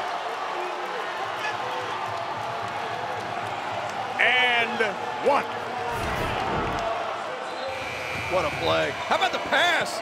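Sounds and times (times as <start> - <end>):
crowd cheering: 0.0 - 10.0.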